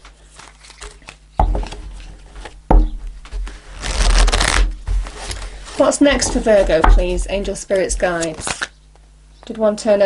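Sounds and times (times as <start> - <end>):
cards riffling: 3.7 - 5.5, 8.0 - 8.8.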